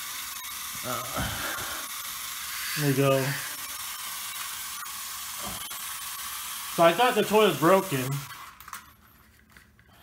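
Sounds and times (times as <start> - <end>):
toy electric motor buzzing: 0.0 - 10.0.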